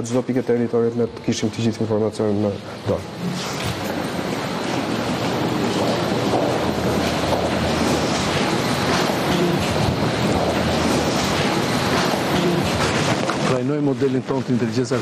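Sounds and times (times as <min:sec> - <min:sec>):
loud rushing noise: 0:03.1 - 0:13.7.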